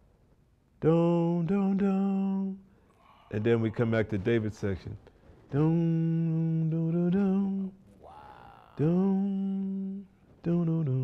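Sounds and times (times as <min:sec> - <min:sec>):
man humming: 0:02.0 - 0:03.9, 0:05.6 - 0:11.0.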